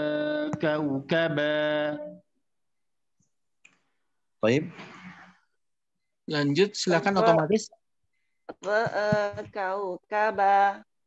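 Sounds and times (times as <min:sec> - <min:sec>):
person reciting: 0:00.0 - 0:02.3.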